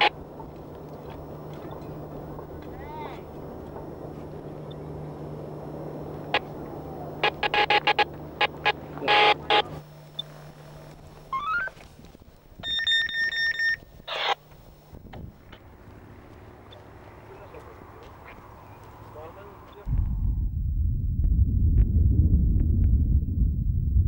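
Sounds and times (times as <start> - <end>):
electronic beeping: 7.2 - 9.7, 12.6 - 14.4
low hum: 14.7 - 24.0.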